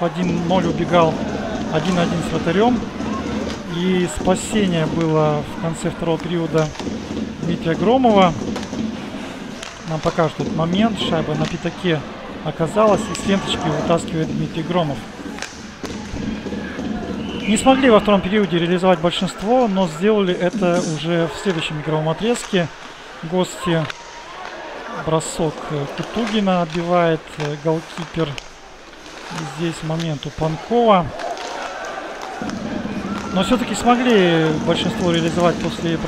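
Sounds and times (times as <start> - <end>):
crowd noise: 0.0 - 36.0
murmur of arena voices: 0.0 - 36.0
hockey stick knocking puck: 0.2 - 5.2, 5.8 - 11.8, 12.8 - 18.1, 31.1 - 36.0.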